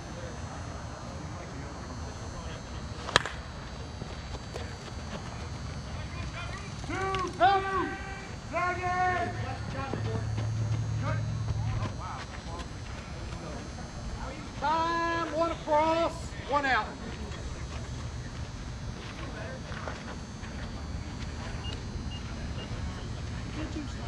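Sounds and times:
bat striking ball: 3.1 - 3.4
players shouting: 6.1 - 12.0.

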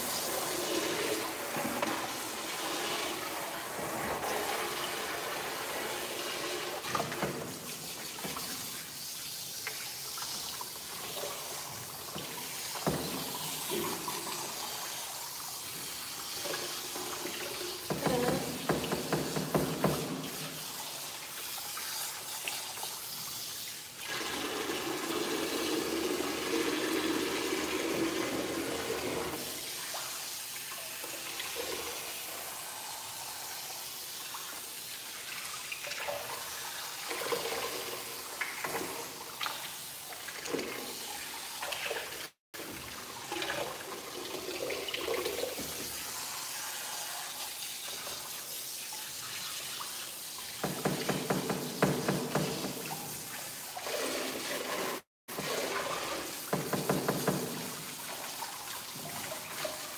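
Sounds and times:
water running into tub: 0.0 - 59.9.

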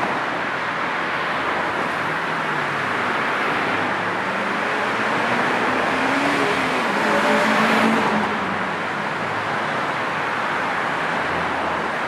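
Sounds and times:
passing car traffic: 0.0 - 12.0.

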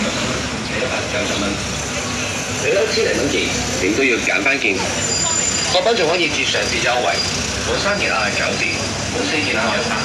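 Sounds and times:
passers-by talking: 0.0 - 10.0
road traffic rumble: 0.0 - 10.0.

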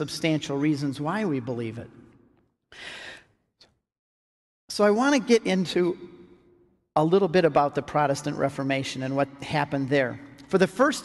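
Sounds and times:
man breathing: 2.7 - 3.5.

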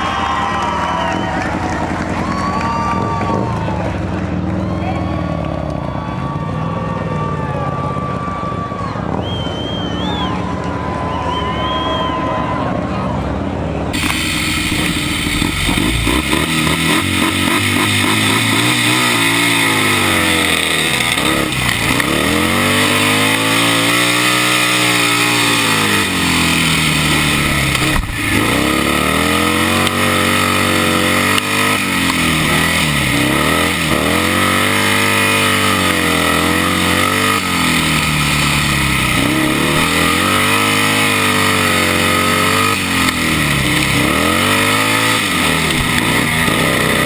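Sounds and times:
high engine whine: 0.0 - 47.0
racing engines running: 0.0 - 47.0.

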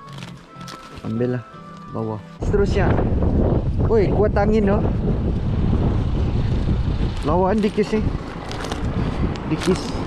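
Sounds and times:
wind buffeting microphone: 2.4 - 10.0.

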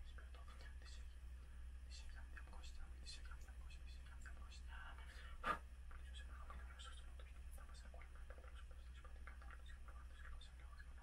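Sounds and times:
man whispering: 0.0 - 1.2, 1.8 - 11.0
steady low hum: 0.0 - 11.0.

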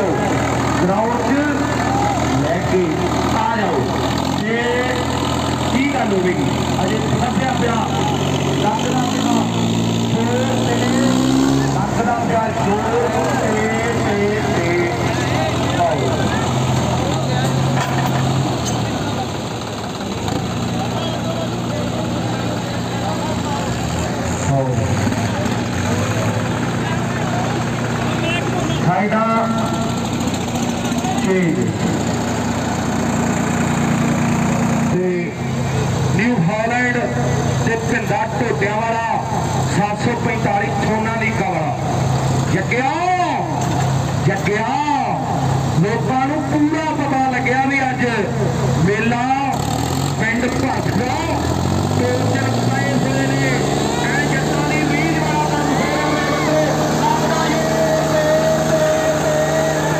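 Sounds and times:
diesel tractor engines droning: 0.0 - 59.9
voices shouting: 1.3 - 2.4, 52.9 - 59.9.

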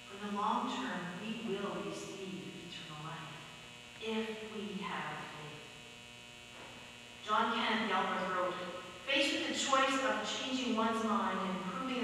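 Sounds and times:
indistinct speech: 0.0 - 3.4, 4.0 - 5.6, 7.2 - 12.0
electrical mains hum: 0.0 - 12.0.

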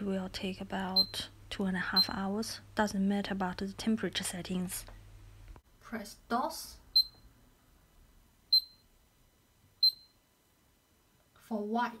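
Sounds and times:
washing machine button beeps: 1.0 - 1.2, 7.0 - 7.2, 8.5 - 8.8, 9.8 - 10.2.

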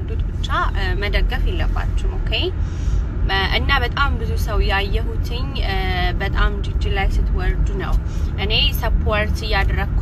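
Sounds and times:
woman talking: 0.0 - 2.6, 3.2 - 10.0
car cabin rumble: 0.0 - 10.0.

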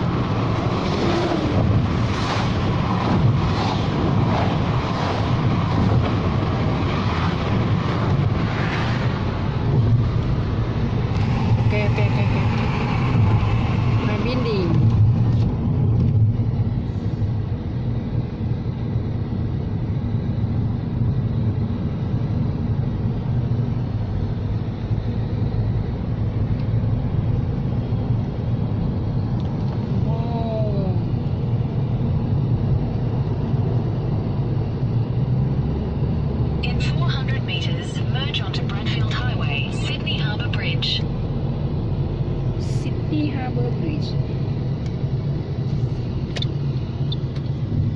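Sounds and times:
car cabin road rumble: 0.0 - 47.9.

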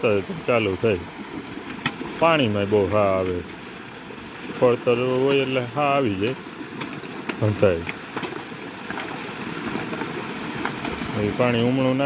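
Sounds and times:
man talking: 0.0 - 1.1, 2.2 - 3.5, 4.6 - 6.4, 7.4 - 7.9, 11.1 - 12.0
pump engine humming: 0.0 - 12.0
water pouring from pipe: 0.0 - 12.0.

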